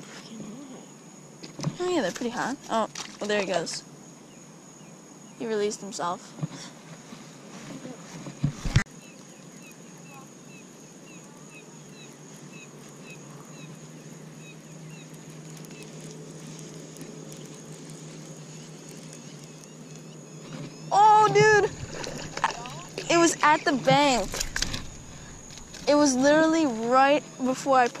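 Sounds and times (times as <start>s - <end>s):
steady low hum: 0.0s - 28.0s
small high chirps: 8.9s - 27.5s.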